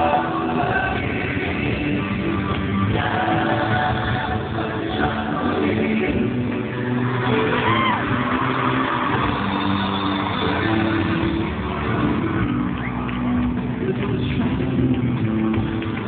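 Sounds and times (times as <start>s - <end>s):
live pop ballad singing with band: 0.0s - 8.8s, 13.5s - 15.9s
crowd screaming: 6.7s - 13.6s.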